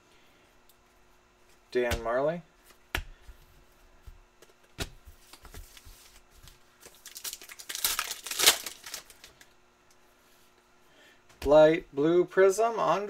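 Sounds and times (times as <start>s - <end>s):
plastic wrapper crinkling and tearing: 6.8s - 9.5s.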